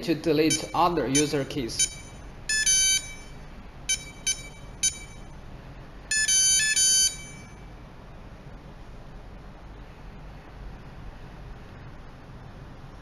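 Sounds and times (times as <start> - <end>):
electronic lock beeps: 0.5 - 5.3, 6.1 - 7.6.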